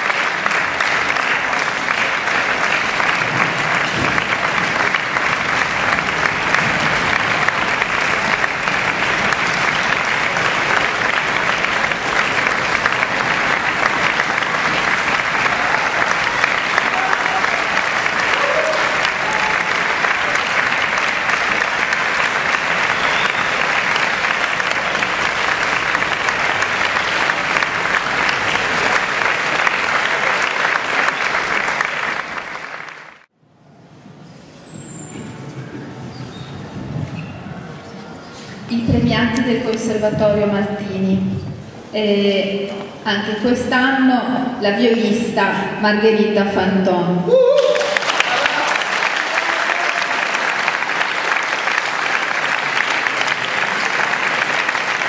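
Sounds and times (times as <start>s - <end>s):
audience applauding: 0.0s - 33.3s, 47.5s - 55.0s.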